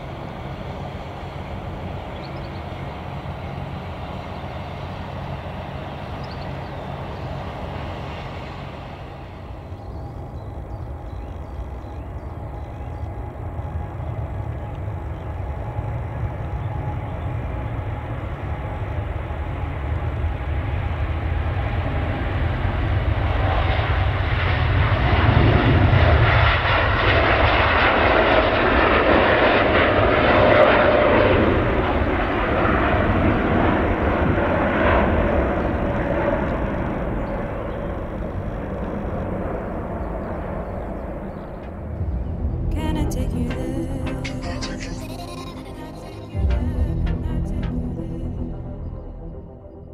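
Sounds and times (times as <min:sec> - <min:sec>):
jet airliner taking off: 0:00.0 - 0:49.9.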